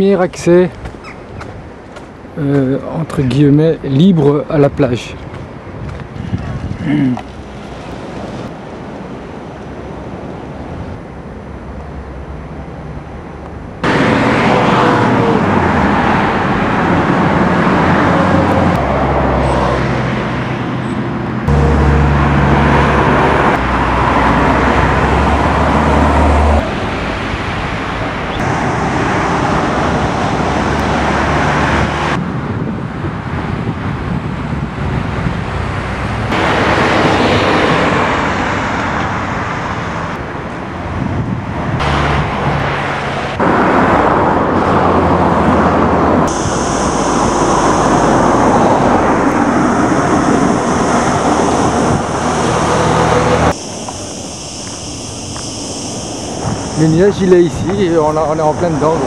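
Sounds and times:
road traffic rumble: 0.0 - 59.0.

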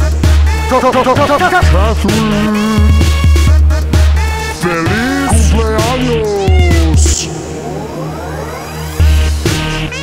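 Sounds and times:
electronic dance music: 4.7 - 8.7
cat meowing: 5.2 - 7.3
rising synth sweep: 5.3 - 9.5.

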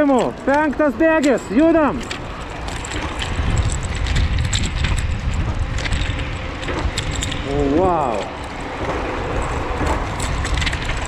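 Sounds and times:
light clicks and rattles: 0.0 - 11.0
tyres on asphalt: 0.0 - 11.0
wind rumble on microphone: 0.0 - 11.0.

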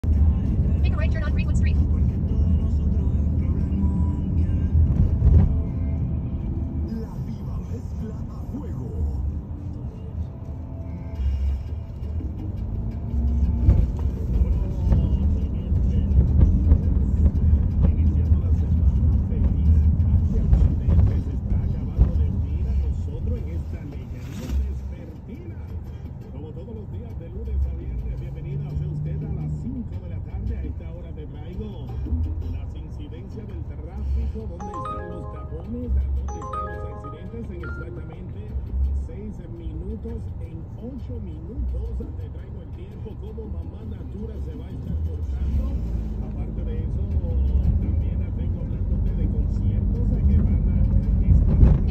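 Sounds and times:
car road rumble: 0.0 - 34.6, 37.0 - 51.9
car radio music and talk: 0.0 - 51.9.

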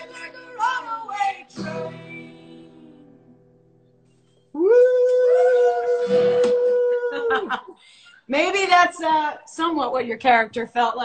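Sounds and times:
loud long howl: 4.6 - 7.5.

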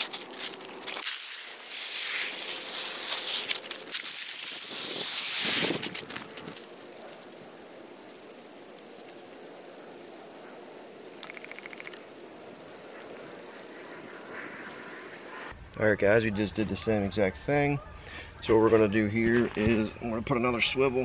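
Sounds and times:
corn kernels pouring onto leaves: 0.0 - 9.1
footsteps rustling dry leaves: 0.0 - 9.2.

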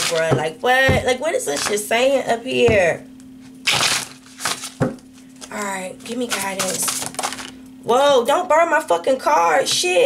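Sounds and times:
cards shuffling rustle: 3.7 - 7.6.

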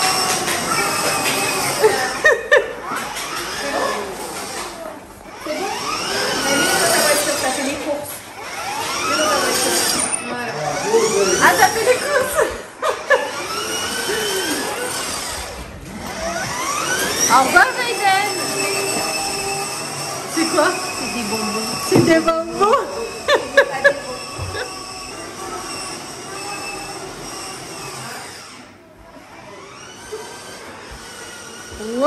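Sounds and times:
toy car electric motor whining: 0.0 - 32.0.

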